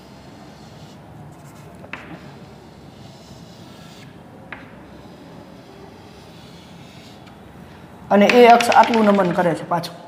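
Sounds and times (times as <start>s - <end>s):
chalk scratching on blackboard: 0.0s - 7.5s
steady background hum: 0.0s - 10.0s
chalk tap: 0.1s - 7.4s, 8.2s - 9.5s.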